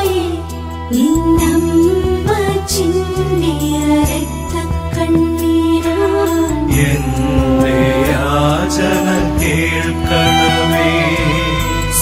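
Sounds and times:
held instrumental chords: 6.0s - 12.0s
person singing a slow hymn: 6.2s - 12.0s.

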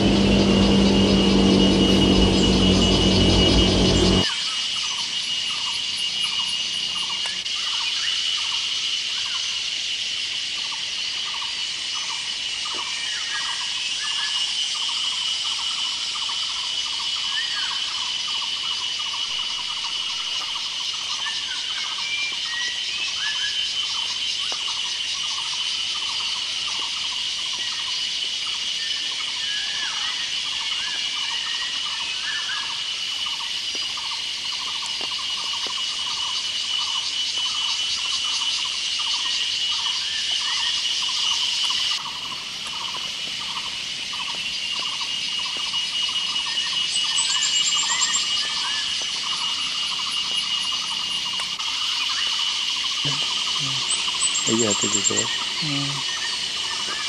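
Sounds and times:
short repeated insect calls: 0.0s - 57.0s
insects shrilling: 34.4s - 57.0s.

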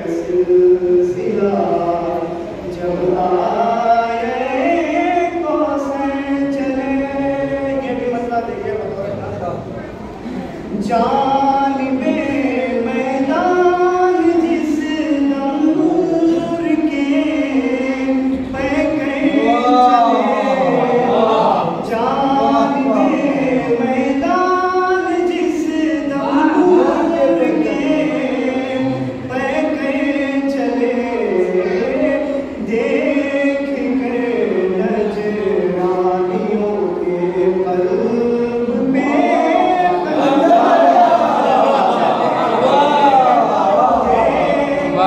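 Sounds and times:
man chanting into a microphone: 0.0s - 9.8s, 10.7s - 41.3s.

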